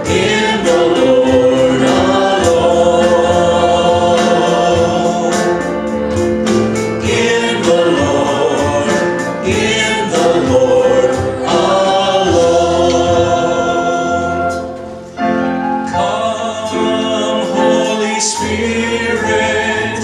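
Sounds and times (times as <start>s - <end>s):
keyboard accompaniment: 0.0s - 20.0s
men singing a hymn: 0.0s - 20.0s.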